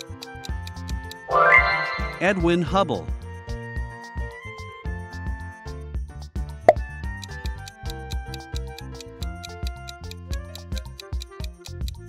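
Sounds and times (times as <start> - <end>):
upbeat background music: 0.0 - 12.0.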